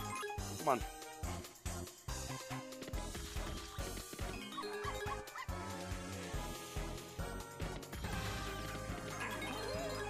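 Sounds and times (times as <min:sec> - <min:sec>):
cartoon background music with beat: 0:00.0 - 0:10.0.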